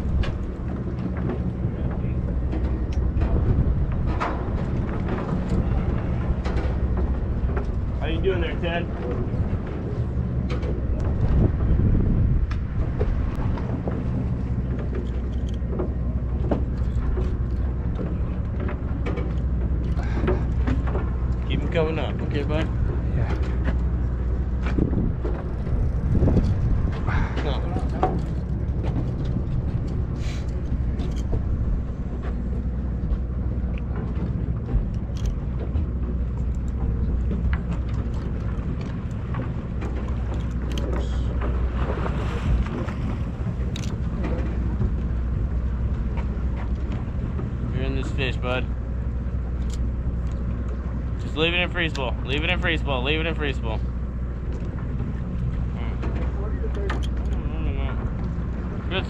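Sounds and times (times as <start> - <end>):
boat engine humming: 0.0 - 59.0.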